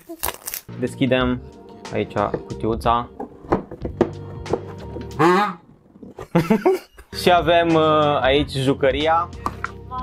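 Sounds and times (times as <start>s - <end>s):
background music held tones: 0.6s - 10.0s.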